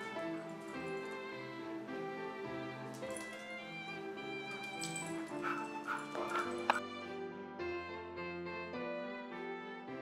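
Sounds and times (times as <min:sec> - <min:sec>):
background music: 0:00.0 - 0:10.0
dog barking: 0:05.4 - 0:06.8.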